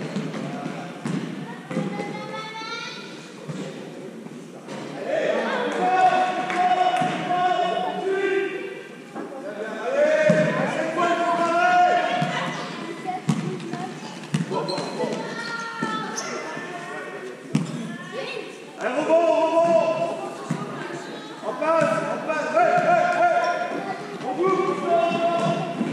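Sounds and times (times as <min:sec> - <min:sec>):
voices echoing in sports hall: 0:00.0 - 0:25.9
basketball bouncing on court floor: 0:13.3 - 0:16.0, 0:17.5 - 0:17.8, 0:25.1 - 0:25.9.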